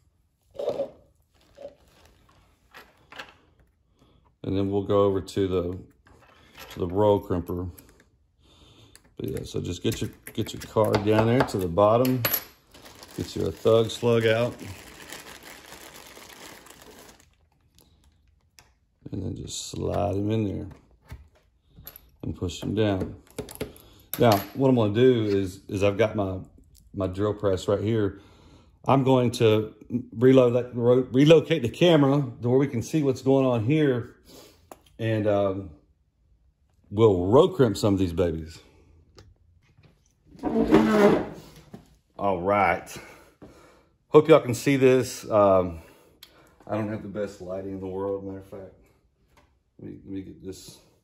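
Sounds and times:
plastic bag rustling: 0.6 - 3.1, 12.6 - 17.8
loud rubbing scrape: 40.4 - 41.6.

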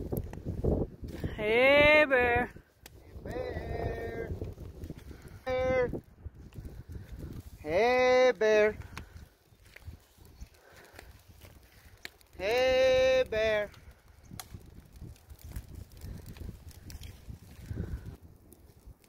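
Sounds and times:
person yelling long calls: 1.3 - 2.5, 3.1 - 4.4, 5.3 - 6.0, 7.6 - 8.8, 12.4 - 13.7.

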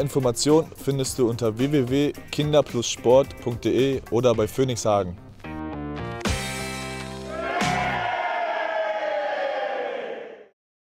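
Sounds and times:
group shouting a cheer: 7.3 - 10.5.

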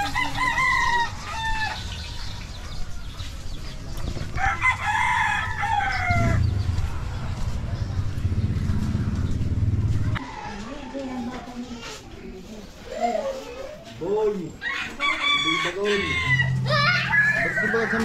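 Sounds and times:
rooster crowing: 4.4 - 6.5, 14.6 - 18.0
low steady rumble: 5.4 - 10.2.

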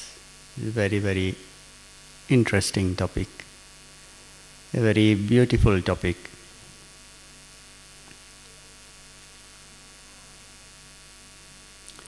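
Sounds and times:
electrical mains hum: 0.0 - 12.0
faint hiss: 0.0 - 12.0.

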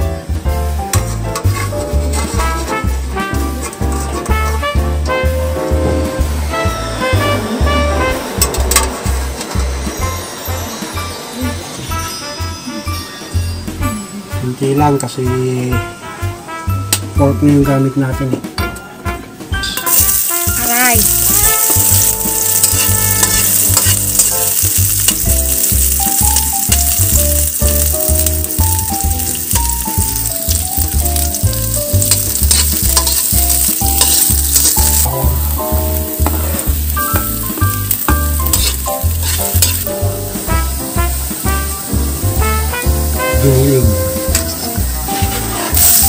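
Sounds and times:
onions sizzling in hot oil: 0.0 - 13.8, 19.6 - 46.0
fork scraping a pan: 0.9 - 4.7, 21.0 - 26.9, 32.0 - 35.1, 37.9 - 39.9, 44.3 - 46.0.

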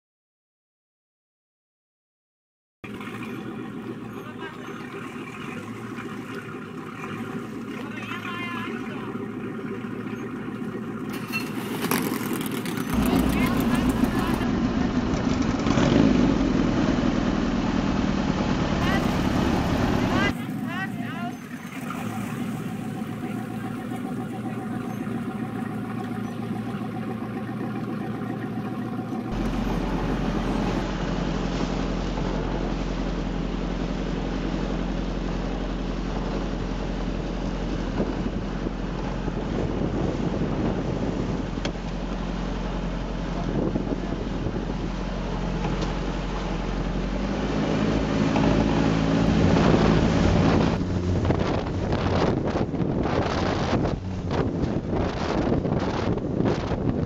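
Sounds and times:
boat engine rumble: 2.8 - 57.0
wind on microphone: 33.9 - 57.0.

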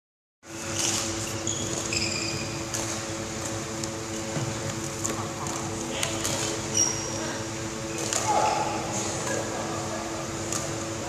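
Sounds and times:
ventilation hum: 0.4 - 11.0
high squeaks: 0.8 - 2.7, 6.7 - 7.3.

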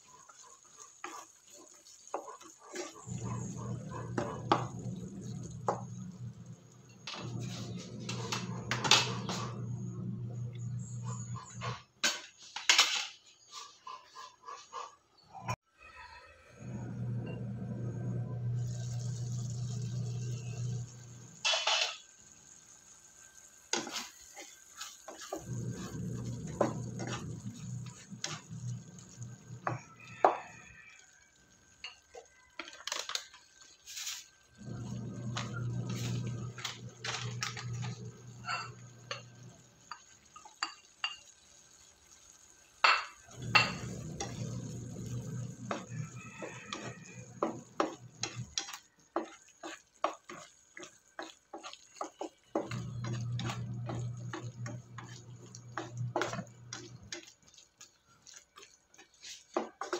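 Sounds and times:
food simmering in a frying pan: 0.0 - 8.2, 17.5 - 59.9
electric cooktop hum: 2.2 - 11.8, 16.4 - 30.9, 31.5 - 59.9.

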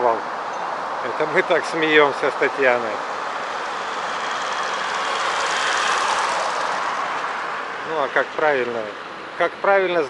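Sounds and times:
tyres rolling on asphalt: 0.0 - 10.0.

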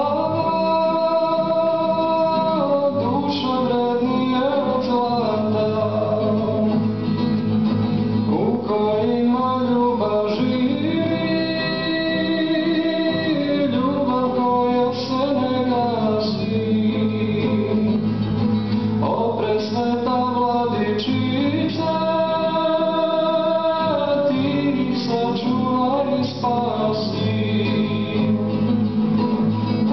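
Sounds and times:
man singing: 0.0 - 7.2, 8.1 - 29.0, 29.6 - 29.9
classical guitar: 0.0 - 29.9.

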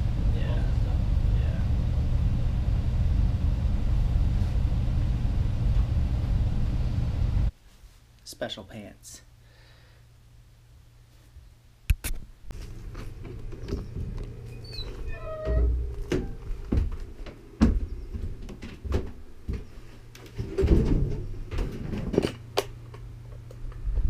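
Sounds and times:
thumps knocks and rattling: 12.5 - 22.5
short squeak: 14.5 - 16.4.

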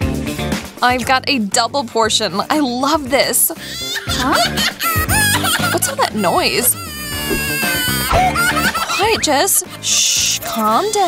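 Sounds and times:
background music: 0.0 - 11.0
woman wailing: 4.2 - 8.5.

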